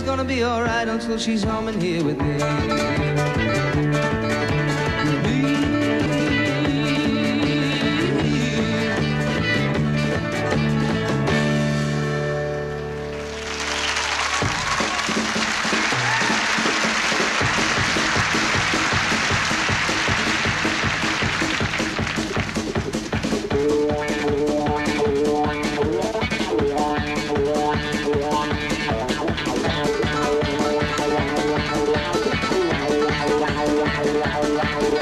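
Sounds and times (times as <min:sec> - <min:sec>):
live band playing: 0:00.0 - 0:35.0
audience applause: 0:12.9 - 0:23.0
steady drum beat: 0:14.2 - 0:35.0.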